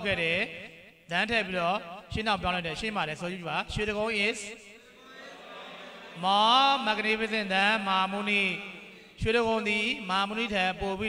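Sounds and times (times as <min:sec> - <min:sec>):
man chanting: 0:00.0 - 0:04.6, 0:06.2 - 0:11.0.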